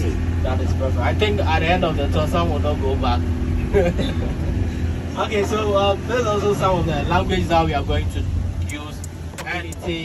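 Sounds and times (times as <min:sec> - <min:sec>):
minibus engine rumbling: 0:00.0 - 0:10.0.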